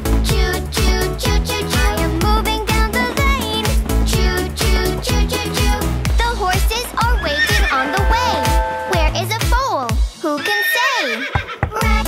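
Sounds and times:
cheerful children's music: 0.0s - 12.0s
horse whinnying: 7.0s - 9.0s, 10.3s - 11.7s.

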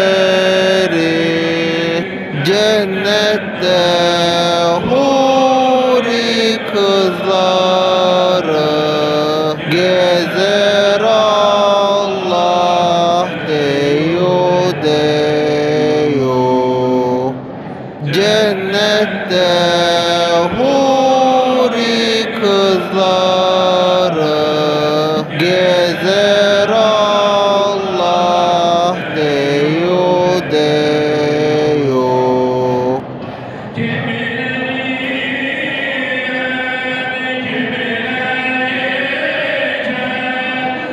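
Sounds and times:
voices chanting a hymn: 0.0s - 40.9s.

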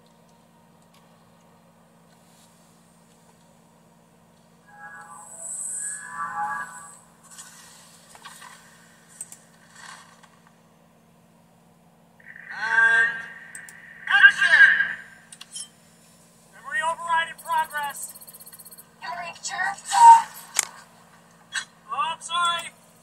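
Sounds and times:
steady low hum: 0.0s - 23.0s
pitched voice-like sounds: 4.7s - 7.0s, 12.2s - 15.0s, 19.0s - 20.5s
film sound effects: 4.7s - 7.2s.

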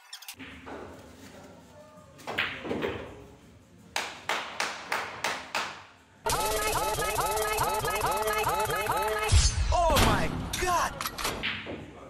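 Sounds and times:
hand clapping: 3.9s - 5.8s.

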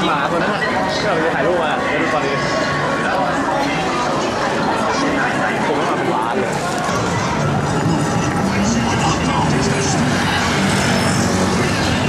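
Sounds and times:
passing cars and traffic: 0.0s - 12.0s
pedestrians talking: 0.0s - 12.0s.

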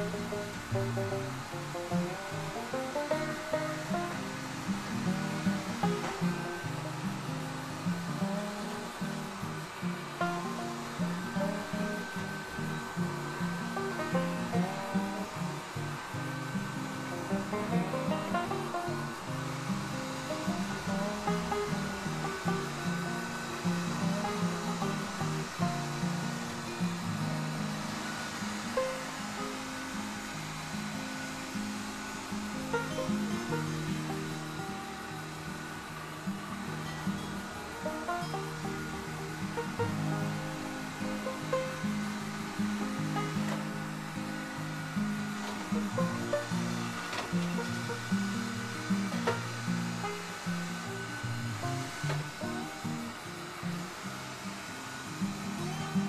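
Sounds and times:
plucked melody background music: 0.0s - 54.3s, 54.9s - 56.0s
robot vacuum whirring: 0.0s - 56.0s.

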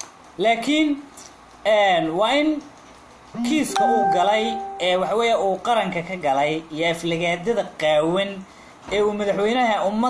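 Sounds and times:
man speaking: 3.4s - 5.3s
steady pitched tone: 3.8s - 5.1s.

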